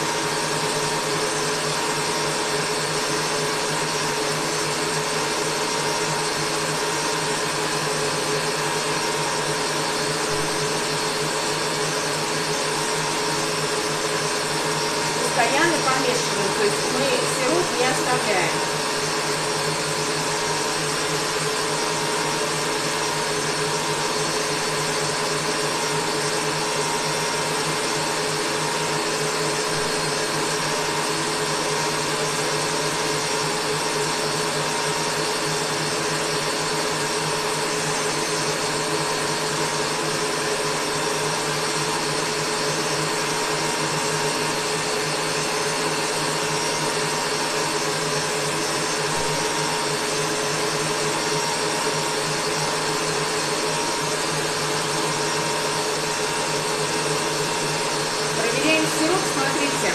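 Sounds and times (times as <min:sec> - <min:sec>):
electric stand mixer whisking: 0:00.0 - 0:59.9.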